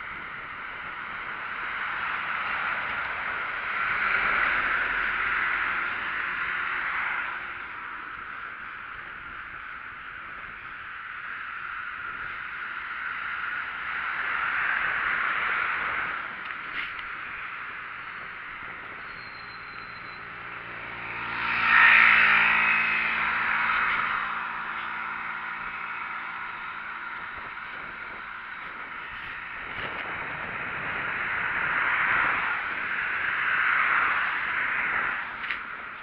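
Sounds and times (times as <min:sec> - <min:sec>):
bicycle ride noise: 0:00.0 - 0:36.0
rushing wind: 0:00.0 - 0:36.0
traffic passing: 0:00.0 - 0:36.0
vehicle engine passing: 0:20.2 - 0:35.6.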